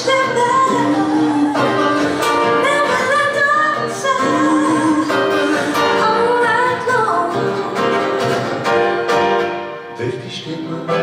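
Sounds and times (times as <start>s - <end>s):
woman singing: 0.0s - 8.0s
strummed acoustic guitar: 0.0s - 11.0s.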